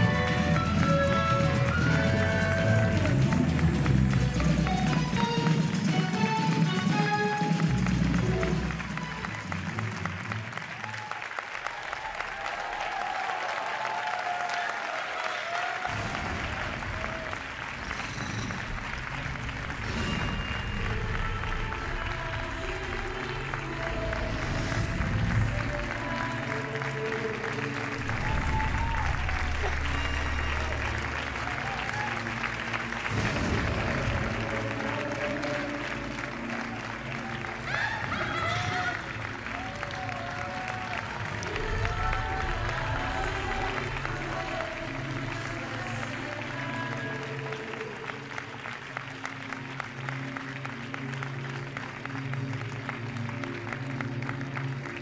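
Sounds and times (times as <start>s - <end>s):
loud runway music: 0.0s - 11.3s, 15.8s - 55.0s
audience applauding: 0.0s - 55.0s.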